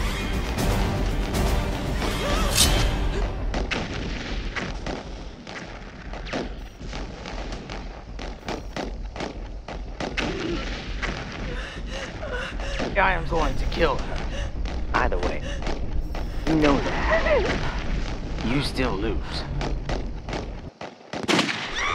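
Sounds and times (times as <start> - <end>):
dramatic film score music: 0.0 - 3.8.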